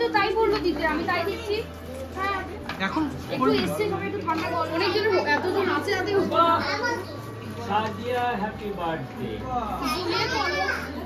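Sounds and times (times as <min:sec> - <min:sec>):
children talking: 0:00.0 - 0:08.2, 0:09.6 - 0:11.0.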